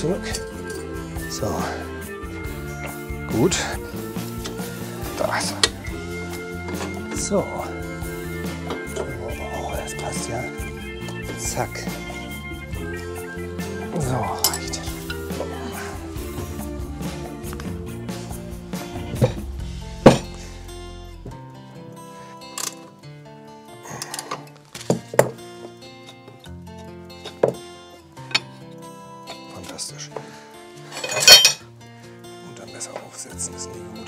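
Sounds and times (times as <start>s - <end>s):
background music: 0.0s - 34.0s
metal parts knocking and clanking: 30.9s - 31.6s.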